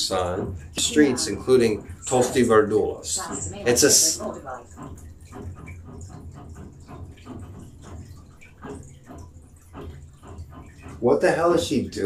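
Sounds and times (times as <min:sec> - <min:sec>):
steady low hum: 0:00.0 - 0:12.0
water pattering and splashing: 0:00.0 - 0:12.0.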